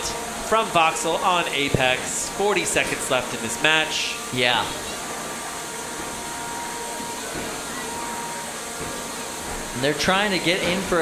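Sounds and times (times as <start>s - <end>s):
faint high whine: 0.0s - 11.0s.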